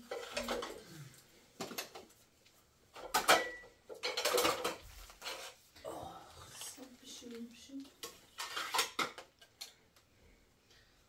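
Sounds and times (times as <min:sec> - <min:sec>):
dishes and bowls clinking: 0:03.0 - 0:04.8.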